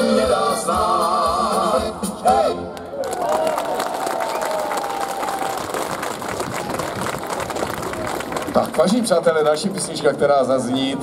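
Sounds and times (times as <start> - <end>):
audience applauding: 2.8 - 9.7.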